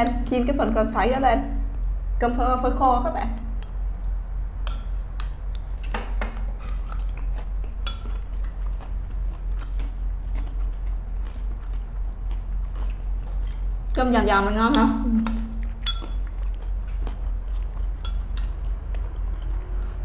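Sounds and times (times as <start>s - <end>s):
low hum: 0.0s - 20.0s
chewing and crunching: 4.8s - 14.1s, 15.4s - 20.0s
utensils clicking on ceramic bowls: 15.8s - 16.2s.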